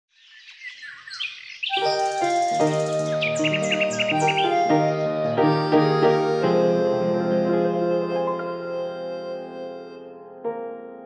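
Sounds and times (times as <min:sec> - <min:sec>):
small birds chirping: 0:00.1 - 0:08.6
music with held notes: 0:01.7 - 0:11.0.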